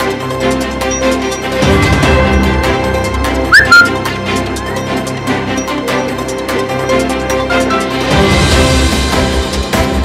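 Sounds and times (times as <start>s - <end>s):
background music: 0.0s - 10.0s
rising whistle: 3.5s - 4.0s.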